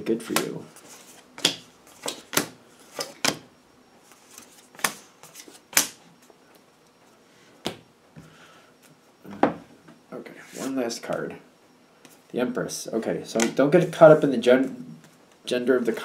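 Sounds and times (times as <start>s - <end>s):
cards shuffling and snapping: 0.3s - 3.4s.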